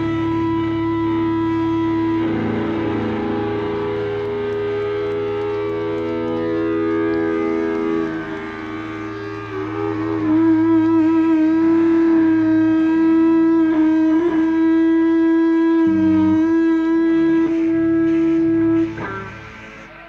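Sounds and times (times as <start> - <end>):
electric guitars droning: 0.0 - 20.0.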